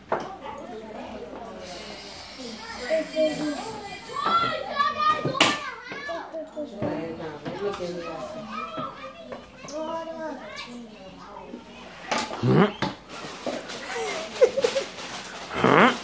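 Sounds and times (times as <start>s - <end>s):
young children chattering: 0.0s - 16.0s.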